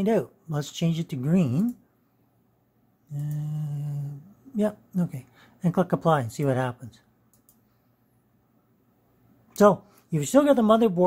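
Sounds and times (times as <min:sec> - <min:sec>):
computer mouse clicks: 0:03.1 - 0:03.5, 0:07.3 - 0:07.7.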